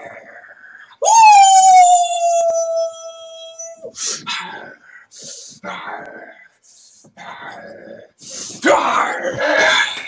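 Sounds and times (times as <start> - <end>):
breathy grunting sounds: 7.2 - 10.0.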